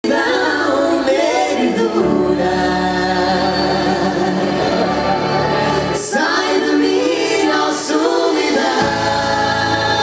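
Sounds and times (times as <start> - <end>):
voices singing together: 0.0 - 10.0.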